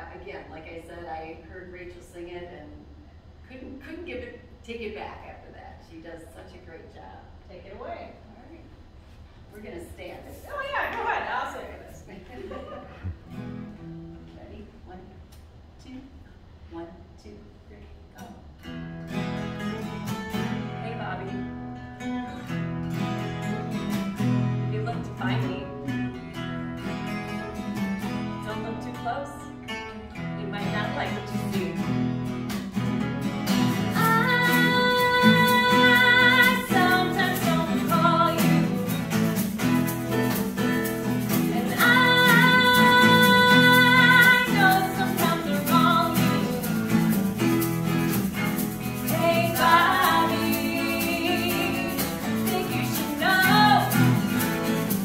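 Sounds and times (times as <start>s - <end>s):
acoustic guitars strumming and picking: 10.3s - 14.4s, 18.5s - 55.0s
woman singing with vibrato: 33.9s - 38.8s, 40.6s - 46.6s, 49.0s - 54.2s.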